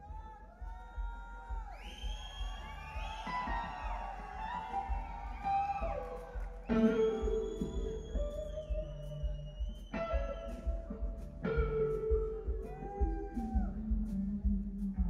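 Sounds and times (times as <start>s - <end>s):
bass and drums: 0.0s - 15.0s
electric guitar solo: 3.2s - 14.4s.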